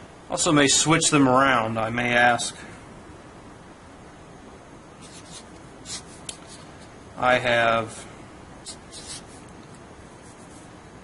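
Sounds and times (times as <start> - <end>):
faint steady hiss: 0.0 - 11.0
marker scratching on paper: 5.0 - 6.8, 8.6 - 9.5, 10.2 - 10.7.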